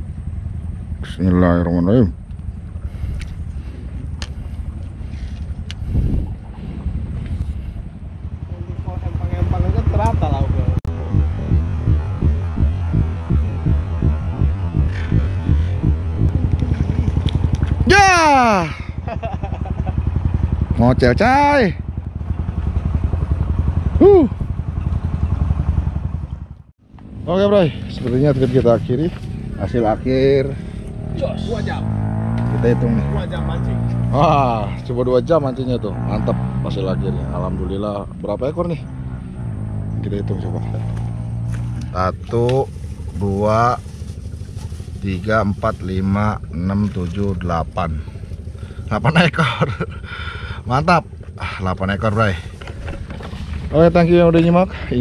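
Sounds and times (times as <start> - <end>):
low motor throb: 0.0 - 42.0
shouted voice calls: 17.8 - 18.8, 24.0 - 24.4.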